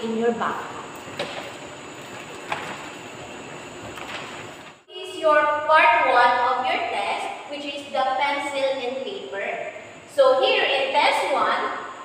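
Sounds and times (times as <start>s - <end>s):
classroom background hiss: 0.0s - 12.0s.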